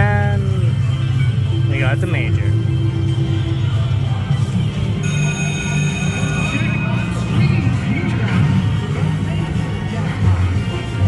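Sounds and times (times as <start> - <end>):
bright steady tones: 5.0 - 8.6
slot machine music and effects: 5.0 - 9.3.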